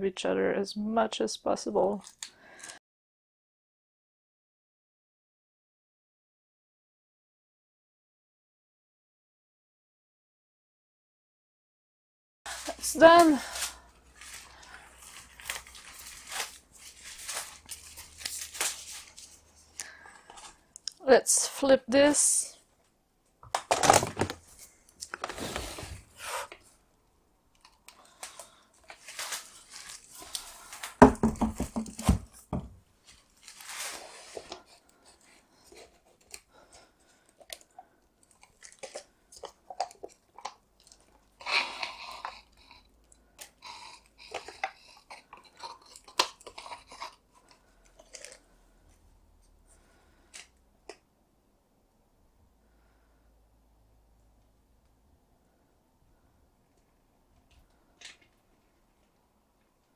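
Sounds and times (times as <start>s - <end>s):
plastic cups crinkling and tapping: 12.5s - 21.0s, 23.4s - 25.6s, 27.6s - 51.0s.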